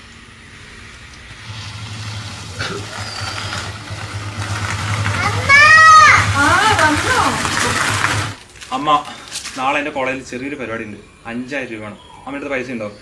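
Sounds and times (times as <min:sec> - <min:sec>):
motorcycle engine at low revs: 0:01.3 - 0:08.4.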